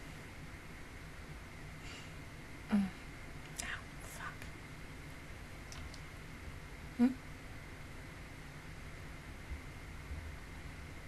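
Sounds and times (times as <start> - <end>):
breathy whisper: 1.8 - 4.5
woman murmuring: 2.7 - 3.0, 7.0 - 7.2.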